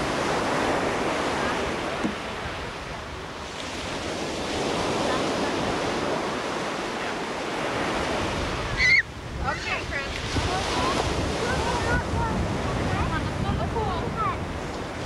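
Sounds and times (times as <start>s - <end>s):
surf breaking on beach: 0.0s - 15.0s
wind buffeting microphone: 0.0s - 15.0s.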